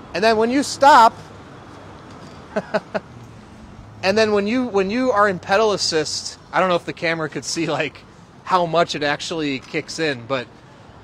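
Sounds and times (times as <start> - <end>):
short quiet laugh: 2.5 - 3.1.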